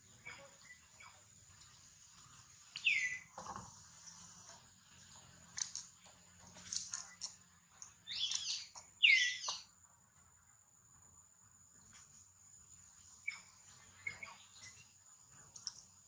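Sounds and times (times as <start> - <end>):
baby monkey squeaking: 8.1 - 9.6.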